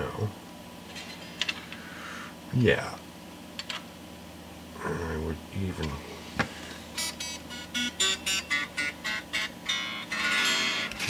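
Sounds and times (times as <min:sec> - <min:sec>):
electric guitar plucked and strummed: 0:07.6 - 0:11.0.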